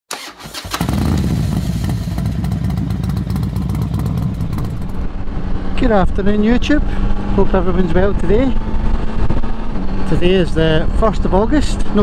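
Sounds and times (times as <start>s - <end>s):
motorcycle engine running: 0.5s - 12.0s.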